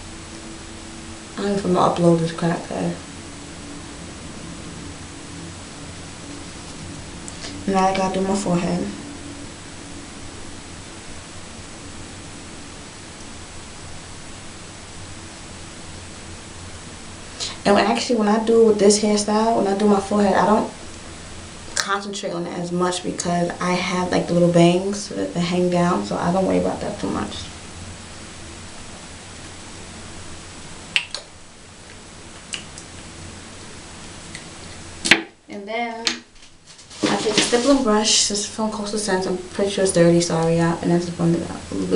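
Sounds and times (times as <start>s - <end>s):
faint high-pitched whine: 0.0s - 41.9s
steady hiss: 0.0s - 41.9s.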